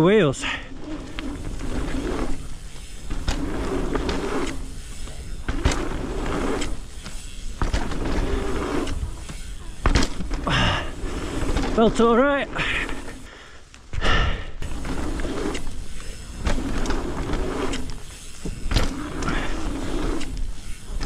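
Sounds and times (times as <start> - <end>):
bike tyres on packed dirt: 0.0 - 21.0
bike landing knock: 3.1 - 11.8.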